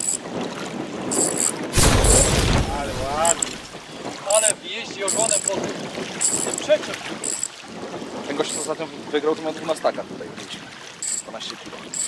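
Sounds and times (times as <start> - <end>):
explosion with deep rumble: 1.8 - 3.9
wind buffeting microphone: 4.9 - 9.2
water lapping: 5.1 - 12.0.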